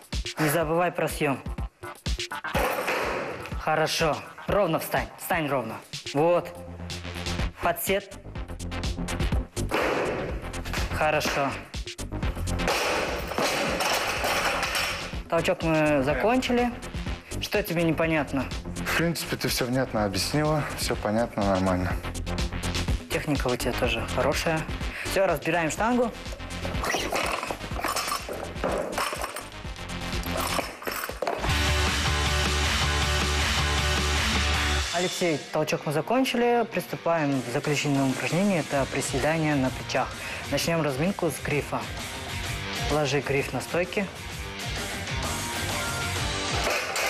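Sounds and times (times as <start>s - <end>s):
background music: 0.0s - 47.0s
barbell plates clattering: 13.0s - 15.1s.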